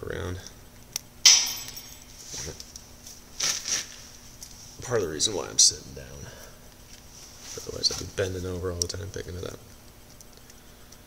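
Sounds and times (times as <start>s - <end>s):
metal tool dropping clink: 1.3s - 2.2s
soft handling noises: 2.0s - 5.6s, 6.2s - 11.0s.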